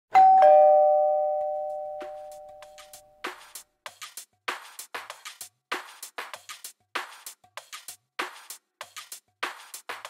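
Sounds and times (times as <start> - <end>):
two-note ding-dong chime: 0.1 - 3.1.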